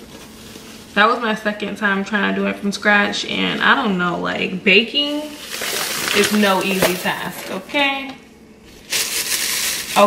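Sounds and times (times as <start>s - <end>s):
paper bag of sugar rustling: 5.1s - 7.6s, 8.6s - 10.0s.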